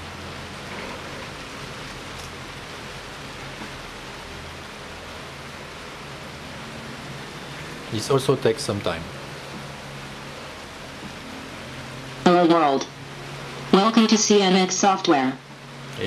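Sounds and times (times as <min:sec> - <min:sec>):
steady background hiss: 0:00.0 - 0:16.0.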